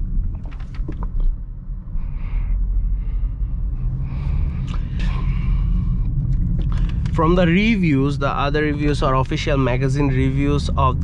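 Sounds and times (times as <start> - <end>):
car interior engine and road rumble: 0.0 - 11.0.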